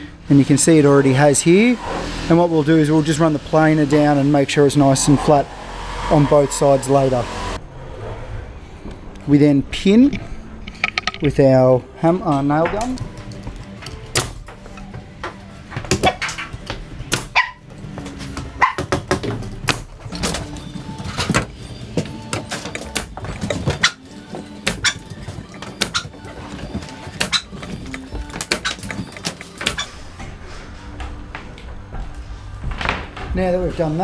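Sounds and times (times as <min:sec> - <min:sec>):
background music: 0:09.5 - 0:34.0.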